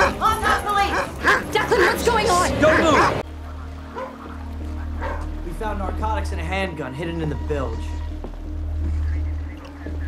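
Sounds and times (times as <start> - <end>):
dog barking: 0.0 - 2.0, 2.6 - 3.2, 3.9 - 4.4, 5.0 - 5.3
low steady music drone: 2.1 - 10.0.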